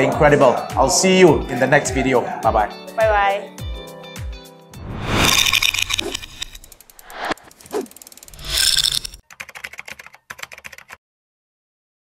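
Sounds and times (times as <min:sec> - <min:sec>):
fine ticks and clicks: 0:05.4 - 0:09.2.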